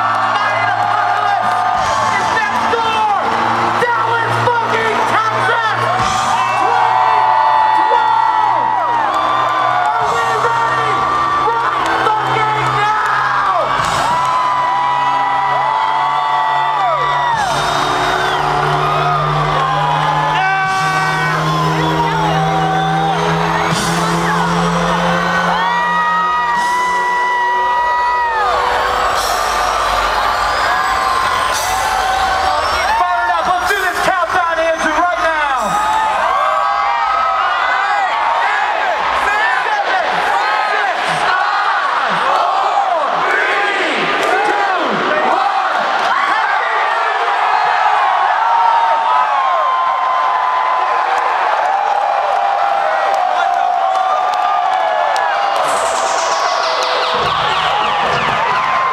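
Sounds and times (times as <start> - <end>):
crowd whooping and yelling: 0.0 - 58.9
loud electronic dance music: 0.0 - 58.9.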